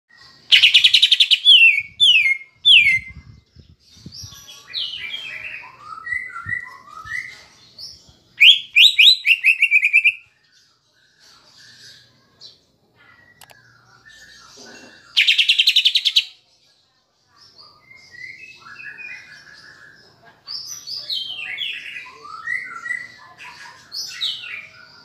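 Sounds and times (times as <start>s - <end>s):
bird singing varied song: 0.1s - 25.0s.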